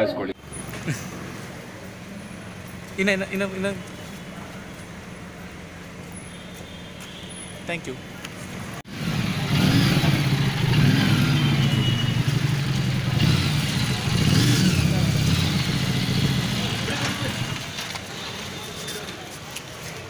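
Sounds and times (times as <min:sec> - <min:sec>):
motorcycle engine running: 0:08.9 - 0:17.9
people's voices: 0:14.0 - 0:20.0.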